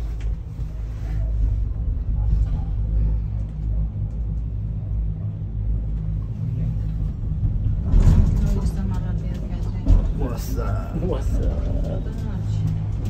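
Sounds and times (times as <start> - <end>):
cable car cabin rumbling: 0.0 - 13.0.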